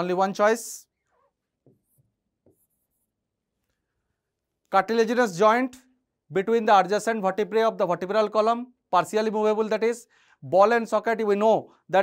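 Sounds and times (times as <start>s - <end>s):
pen tapping on screen: 1.6s - 2.8s.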